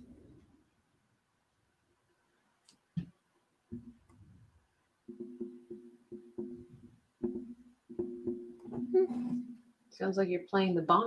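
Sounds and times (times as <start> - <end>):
microphone being knocked: 3.7 - 4.1, 5.1 - 9.6.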